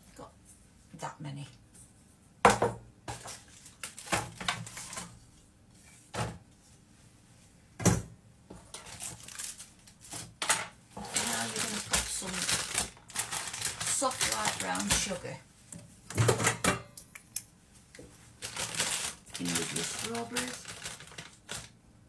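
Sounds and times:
plastic bag rustling: 3.1s - 5.2s, 8.6s - 15.6s, 18.0s - 21.8s.

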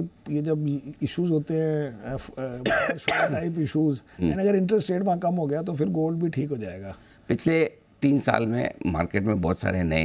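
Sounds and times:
throat-clearing cough: 2.6s - 3.5s.

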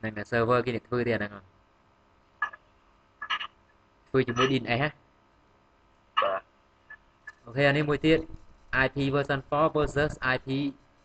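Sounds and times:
man saying uh: 4.2s - 4.9s.

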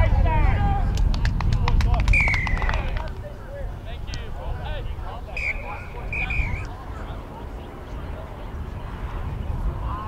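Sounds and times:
spectators clapping: 0.9s - 3.2s.

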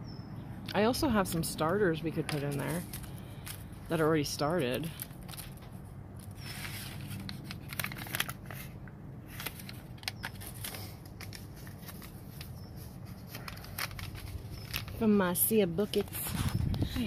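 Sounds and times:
paper packets rustling: 1.1s - 17.0s.

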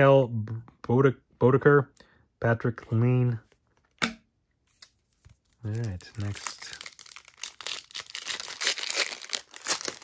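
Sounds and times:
foil wrapper crinkling and tearing: 5.6s - 10.0s.

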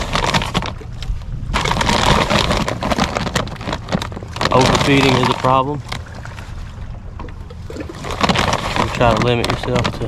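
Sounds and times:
plastic feed bag rustling: 0.0s - 6.0s, 7.7s - 10.0s
steady low rumble: 0.0s - 10.0s.

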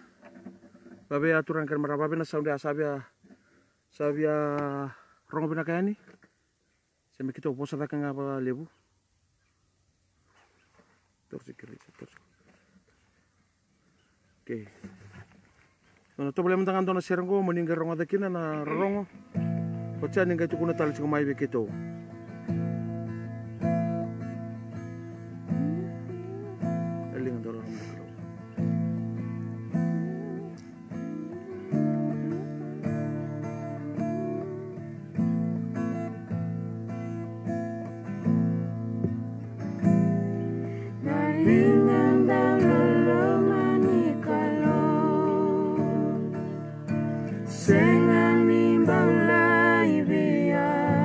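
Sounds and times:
acoustic guitar strumming chords: 18.6s - 51.0s
voices singing: 29.8s - 35.2s, 40.7s - 51.0s.

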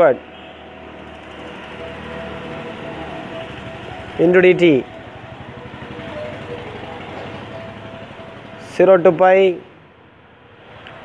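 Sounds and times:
faint wavering thin tones: 0.2s - 9.8s.

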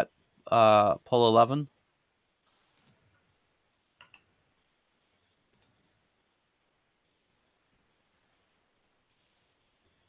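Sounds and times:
computer mouse clicks: 2.6s - 3.2s, 4.0s - 4.3s, 5.5s - 5.8s.

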